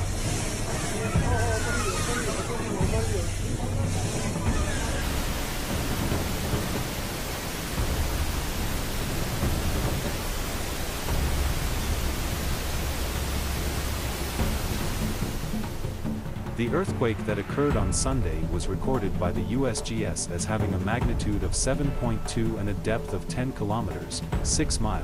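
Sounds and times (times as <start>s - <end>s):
rockslide rushing rumble: 4.8s - 16.1s.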